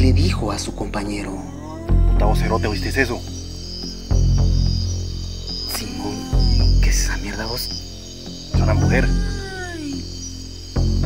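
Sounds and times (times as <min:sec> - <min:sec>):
background music: 0:00.0 - 0:11.0
eerie wailing cry: 0:01.1 - 0:03.9, 0:05.7 - 0:07.6, 0:08.6 - 0:10.2.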